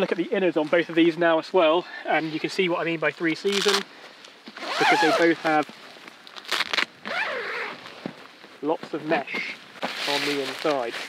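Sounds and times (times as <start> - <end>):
tent fabric rustling: 2.1 - 3.8, 4.4 - 11.0
zip rasp: 4.6 - 5.4, 6.5 - 7.8.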